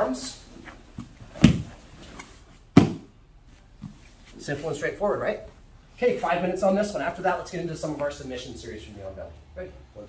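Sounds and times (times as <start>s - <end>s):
body thumping on foam mat: 0.9s - 3.1s.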